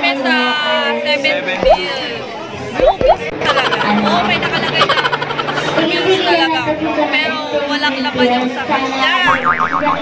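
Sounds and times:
cartoon boing sound effect: 1.6 - 1.8, 2.8 - 3.2, 9.3 - 10.0.

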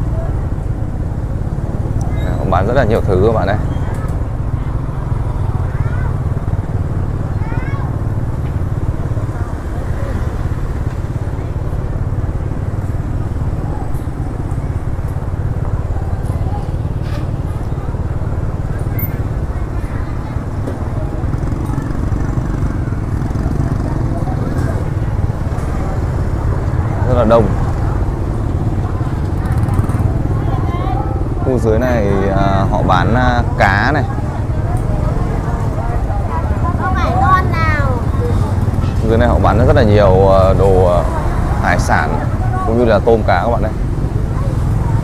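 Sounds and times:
motorbikes running: 0.0 - 45.0
people's voices: 0.0 - 45.0.

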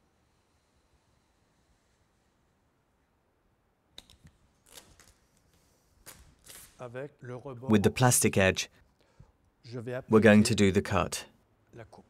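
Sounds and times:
squeegee scraping on vinyl film: 4.6 - 6.9.

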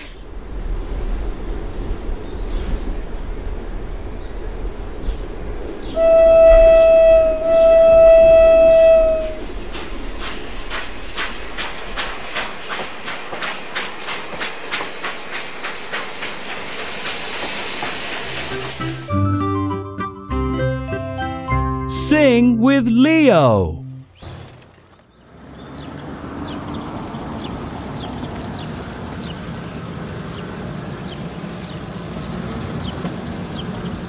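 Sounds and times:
train whistle blasts: 6.0 - 9.4
wheels clickety-clack on rails: 7.5 - 19.2, 24.4 - 34.0.

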